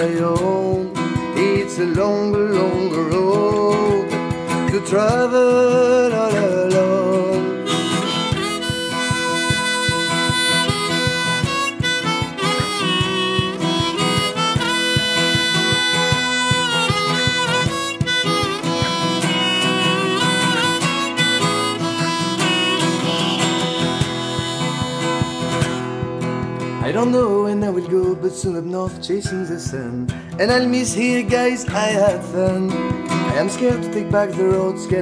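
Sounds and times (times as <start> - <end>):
strummed acoustic guitar: 0.0 - 35.0
harmonica solo: 6.5 - 26.3.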